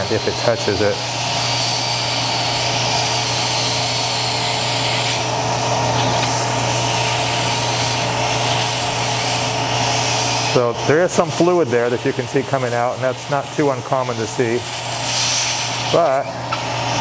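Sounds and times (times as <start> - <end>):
suction hiss: 0.0 - 17.0.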